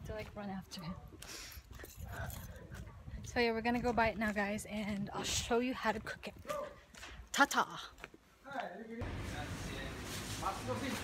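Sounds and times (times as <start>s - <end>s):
footsteps walking briskly: 0.0s - 8.7s.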